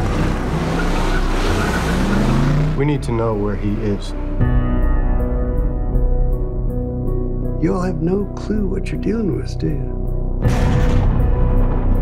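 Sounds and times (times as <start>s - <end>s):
car engine at high revs: 0.0s - 3.0s
road and tyre noise rushing: 0.0s - 4.2s.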